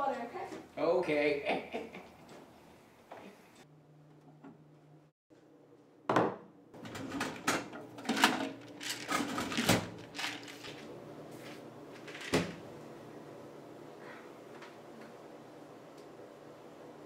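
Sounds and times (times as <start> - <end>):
glasses set down on counter: 6.1 - 6.4
refrigerator door opening: 12.0 - 12.6.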